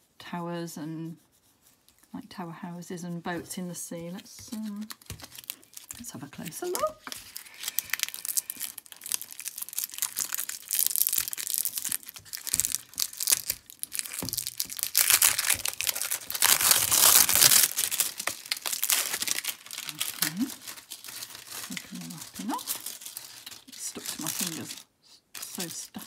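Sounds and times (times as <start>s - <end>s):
plastic wrapping crinkling: 4.4s - 26.0s.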